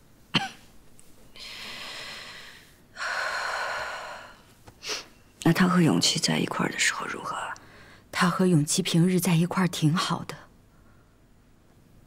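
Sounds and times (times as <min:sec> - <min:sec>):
woman coughing: 0:00.3 - 0:00.7
soft breathy sound: 0:01.3 - 0:05.2.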